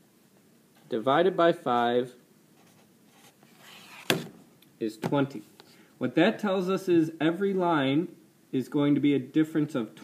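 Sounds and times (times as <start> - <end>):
paper sheet scraping: 2.6 - 4.3.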